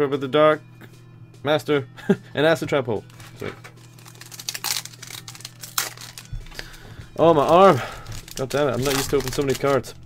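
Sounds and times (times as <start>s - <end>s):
foil wrapper crinkling: 3.1s - 10.0s.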